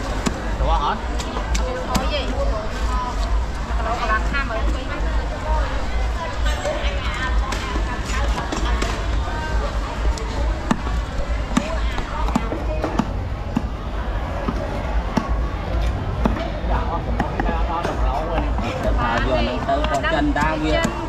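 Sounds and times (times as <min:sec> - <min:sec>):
market voices: 0:00.0 - 0:21.0.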